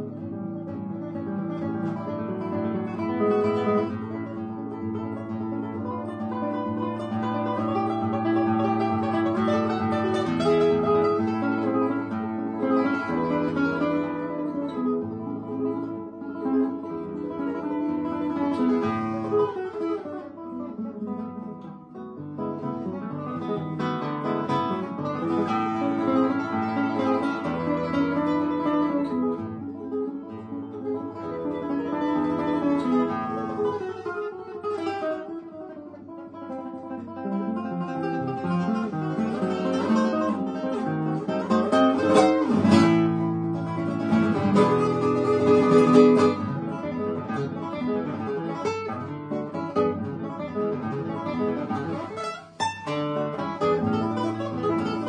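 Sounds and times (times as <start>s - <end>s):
classical guitar fingerstyle: 0.0s - 55.0s.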